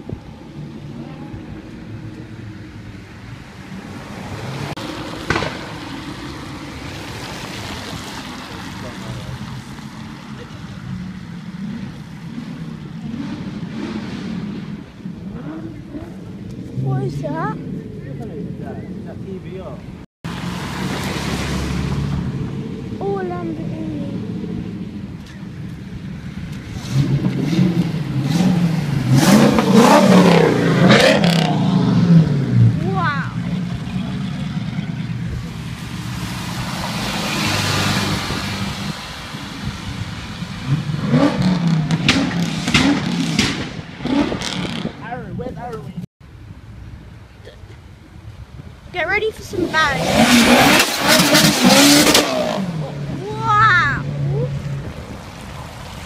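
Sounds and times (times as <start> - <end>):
sports car engines accelerating past: 20.3 - 45.1, 49.6 - 53.2.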